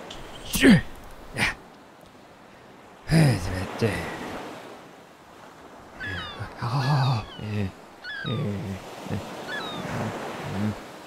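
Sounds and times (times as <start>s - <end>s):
gruff voice grunting and mumbling: 6.1s - 9.3s, 9.9s - 10.8s.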